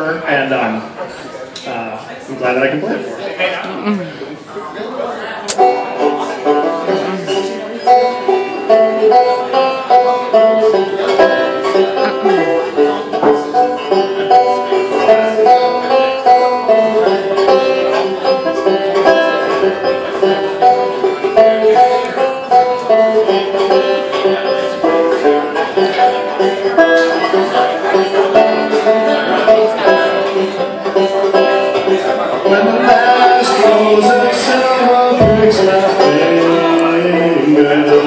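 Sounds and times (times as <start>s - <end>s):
banjo picking a melody: 4.5s - 38.0s.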